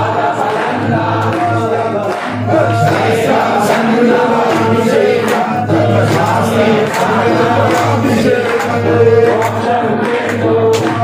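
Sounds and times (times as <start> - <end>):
group of voices chanting: 0.0 - 11.0.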